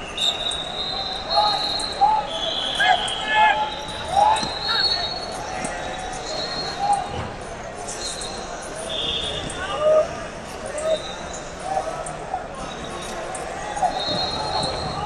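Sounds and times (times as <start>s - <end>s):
shoes squeaking on mats: 3.8s - 7.2s, 12.7s - 15.0s.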